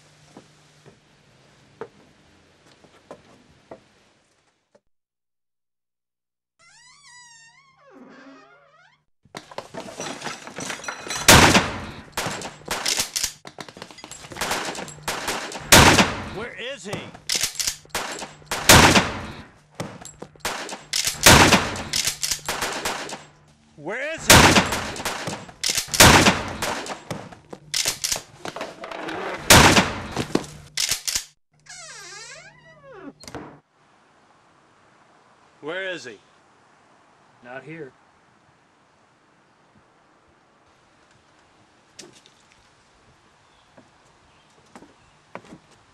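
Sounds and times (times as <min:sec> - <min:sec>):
loud sharp bangs and knocks: 0:11.2 - 0:13.1, 0:14.2 - 0:17.3, 0:17.9 - 0:23.3, 0:24.2 - 0:27.4, 0:29.4 - 0:30.4.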